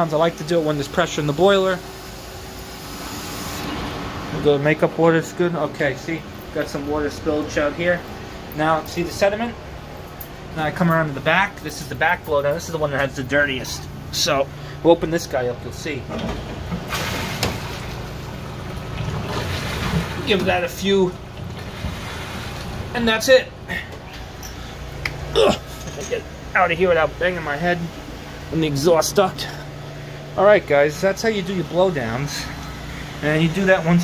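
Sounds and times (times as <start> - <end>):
rumbling boiler room machinery: 0.0 - 34.0
steam boiler water rushing hiss: 0.4 - 3.7, 16.9 - 17.8.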